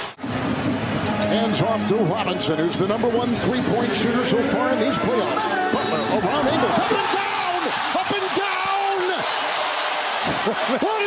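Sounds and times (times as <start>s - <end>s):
crowd cheering: 3.6s - 11.0s.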